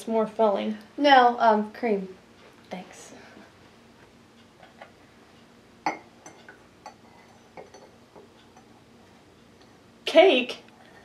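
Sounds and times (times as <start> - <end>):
teaspoon clinking against teacup: 5.9 - 8.7.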